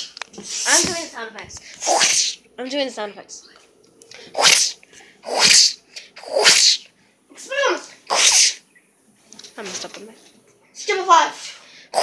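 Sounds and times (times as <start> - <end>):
child making zap sounds: 0.6 - 1.1, 1.8 - 2.4, 4.3 - 8.6, 10.9 - 12.0.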